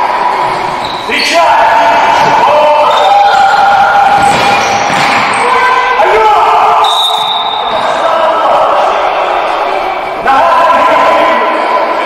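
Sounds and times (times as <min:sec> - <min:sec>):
players shouting: 0:00.0 - 0:12.0.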